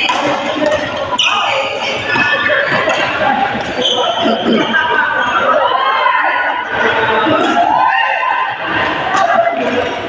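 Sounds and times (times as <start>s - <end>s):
many voices talking and calling: 0.0s - 10.0s.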